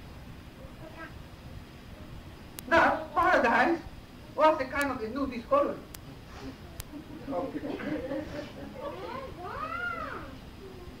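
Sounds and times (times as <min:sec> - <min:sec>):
laughter or murmuring: 0:06.4 - 0:09.0.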